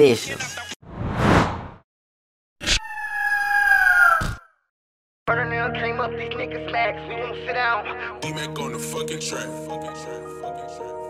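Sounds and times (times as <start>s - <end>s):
eagle screech: 2.6s - 4.6s.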